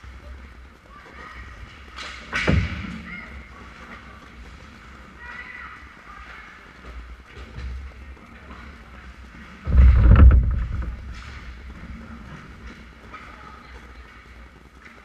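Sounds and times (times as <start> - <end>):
low rink rumble: 0.0 - 15.0
knocks from sticks and skates: 1.6 - 4.6.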